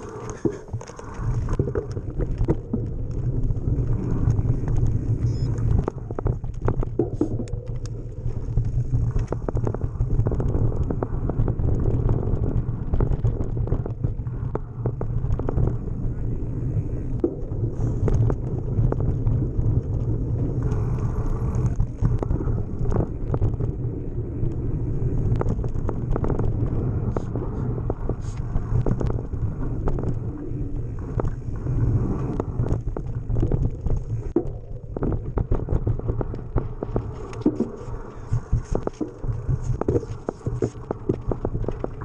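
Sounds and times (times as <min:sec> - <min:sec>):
bike tyres on dirt: 0:00.0 - 0:42.0
wind rumble on microphone: 0:00.0 - 0:42.0.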